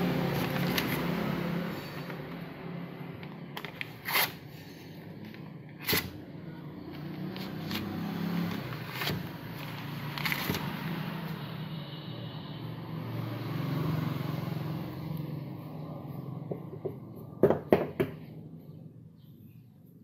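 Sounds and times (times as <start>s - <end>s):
low traffic hum: 0.0s - 20.0s
paper rustling: 7.4s - 10.8s.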